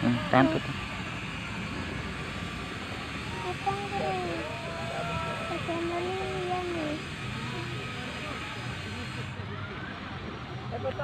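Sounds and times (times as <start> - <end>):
faint voices: 0.0 - 11.0
low outdoor rumble: 0.0 - 11.0.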